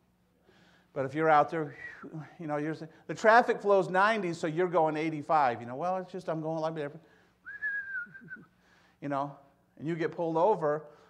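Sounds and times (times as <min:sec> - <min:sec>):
man whistling a held note: 0:01.7 - 0:02.3, 0:07.4 - 0:08.5.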